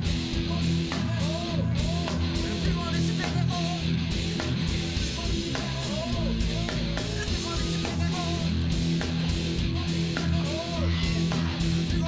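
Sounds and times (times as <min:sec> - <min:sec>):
live rock band: 0:00.0 - 0:12.0.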